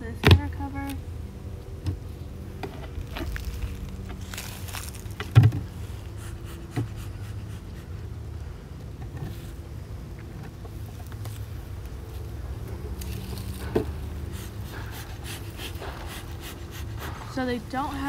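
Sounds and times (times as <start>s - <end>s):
low steady hum: 0.0s - 18.0s
bee smoker bellows puffs: 2.0s - 18.0s.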